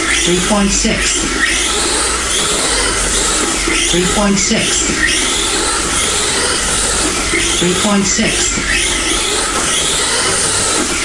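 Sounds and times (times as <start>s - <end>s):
rc car motor whine: 0.0s - 11.0s.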